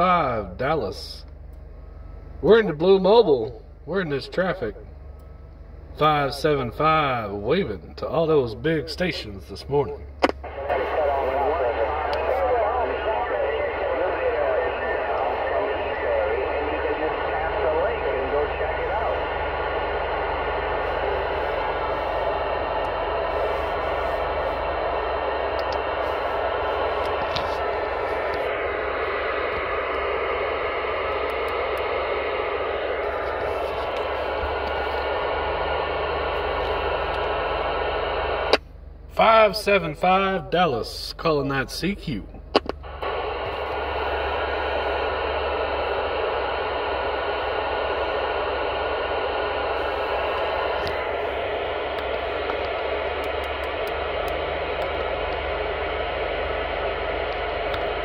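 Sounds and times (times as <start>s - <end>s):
low hum: 0.0s - 58.0s
radio static: 8.7s - 38.6s, 39.2s - 58.0s
garbled distant radio voices: 10.2s - 31.7s.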